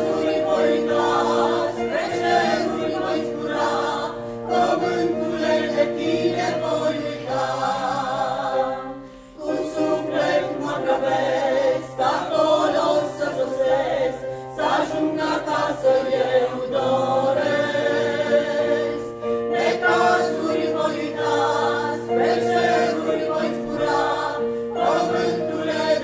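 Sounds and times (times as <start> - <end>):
choir singing a hymn: 0.0 - 26.0
singers breathing: 9.0 - 9.4.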